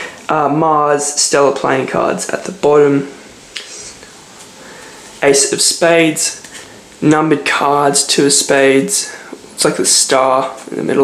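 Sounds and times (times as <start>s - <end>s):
low hiss: 0.0s - 11.0s.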